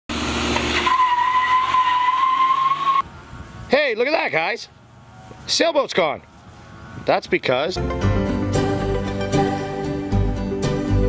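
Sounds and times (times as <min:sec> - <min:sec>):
car engine and road noise: 0:00.1 - 0:11.0
car high-pitched squeal: 0:00.6 - 0:03.0
man speaking: 0:07.0 - 0:07.8.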